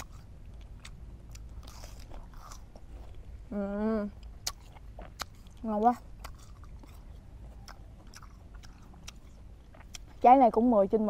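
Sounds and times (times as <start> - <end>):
fruit crunching when chewed: 0.0 - 10.6.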